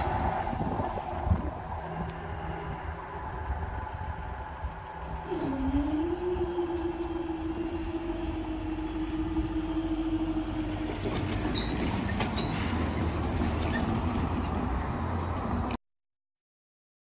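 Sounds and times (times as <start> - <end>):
low rumble: 0.0 - 15.0
barrier drive hum: 0.0 - 15.7.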